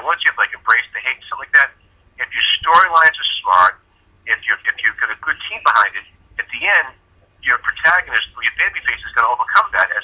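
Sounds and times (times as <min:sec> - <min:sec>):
voice talking over telephone: 0:00.0 - 0:10.0.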